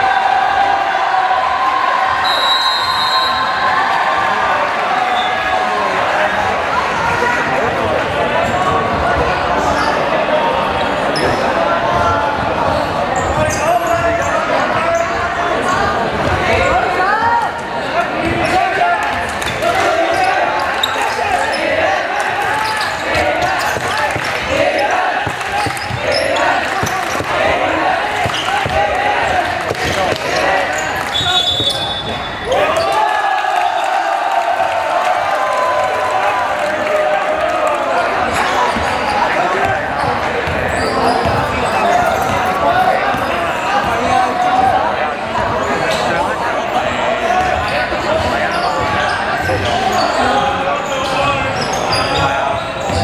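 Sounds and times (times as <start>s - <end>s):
spectators shouting: 0.0s - 14.7s, 15.3s - 50.7s
referee's whistle blast: 2.2s - 3.7s, 31.1s - 32.5s.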